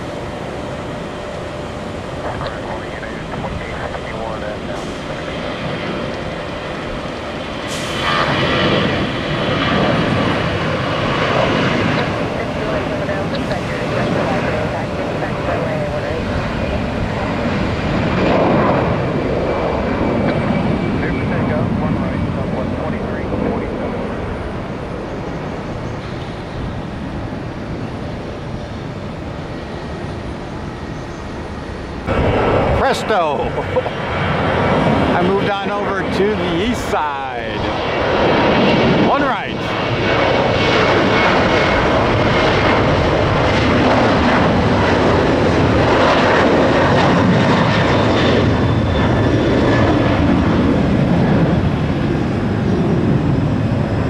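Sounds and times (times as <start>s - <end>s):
jet airliner taking off: 0.0s - 54.0s.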